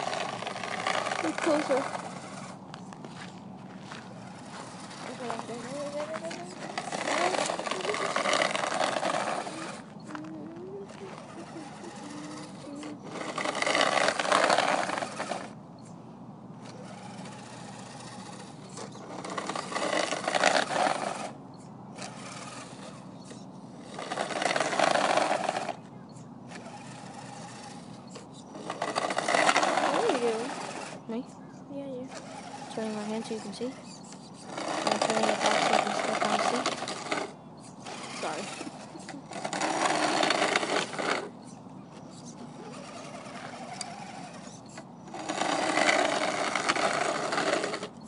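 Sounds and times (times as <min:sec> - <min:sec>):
rc truck motor whirring: 0:00.0 - 0:48.0.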